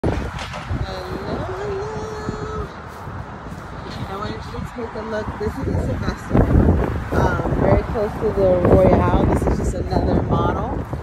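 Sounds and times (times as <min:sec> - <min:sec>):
low rumble of passing cars: 0:00.0 - 0:11.0.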